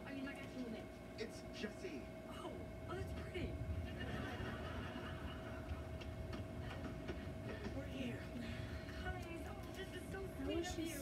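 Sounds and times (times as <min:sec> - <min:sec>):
constant hum: 0:00.0 - 0:11.0.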